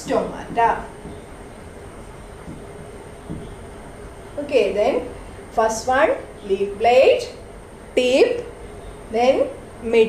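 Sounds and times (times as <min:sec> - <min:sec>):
faint constant tone: 0:00.0 - 0:10.0
low background hum: 0:00.0 - 0:10.0
room noise: 0:00.0 - 0:10.0.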